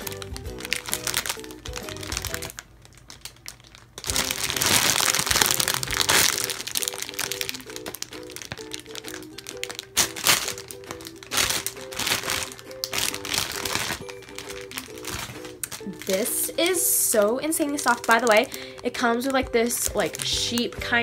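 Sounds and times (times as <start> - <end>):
plastic bag crinkling: 0.0 - 21.0
background music plinking melody: 4.1 - 21.0.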